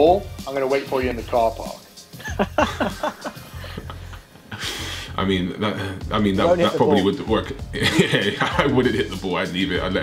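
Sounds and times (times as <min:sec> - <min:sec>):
background music: 0:00.0 - 0:10.0
men laughing: 0:02.1 - 0:05.1, 0:06.7 - 0:09.1.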